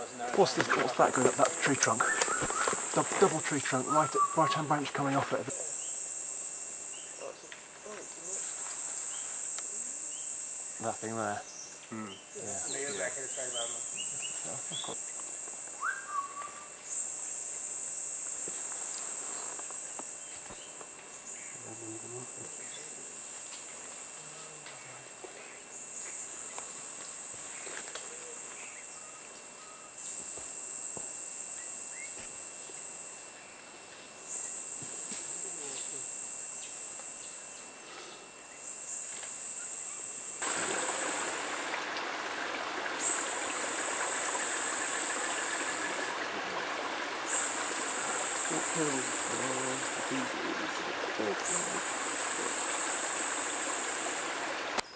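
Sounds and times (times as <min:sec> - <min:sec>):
high-pitched insect buzz: 0:00.0 - 0:54.9.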